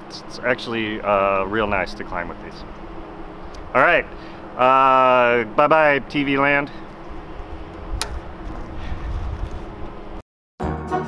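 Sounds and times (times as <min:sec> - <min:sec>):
faint steady hum: 0:00.0 - 0:10.2
wind rumbling on microphone: 0:06.8 - 0:10.2
sharp click: 0:08.0 - 0:08.2.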